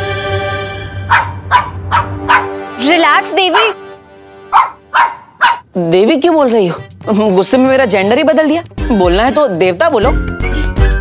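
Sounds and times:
background music with held notes: 0.0s - 5.0s, 6.0s - 11.0s
small dog yapping: 1.1s - 2.5s, 4.6s - 5.7s.

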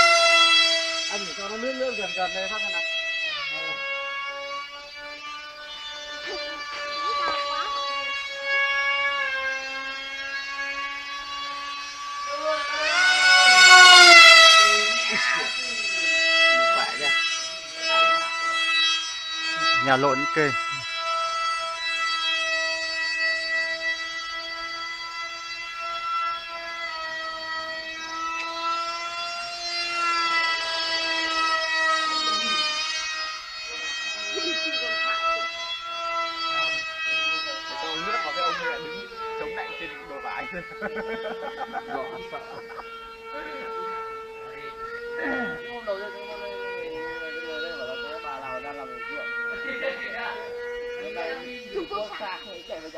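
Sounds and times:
model plane motor whine: 0.0s - 52.9s.

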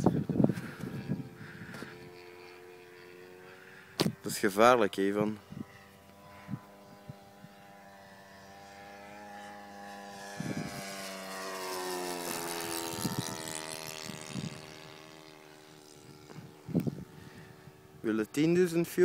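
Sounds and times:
model plane engine flying past: 0.0s - 19.0s.

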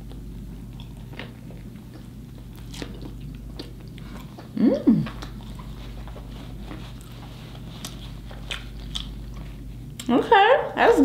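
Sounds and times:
chewing a sandwich: 0.0s - 10.1s.

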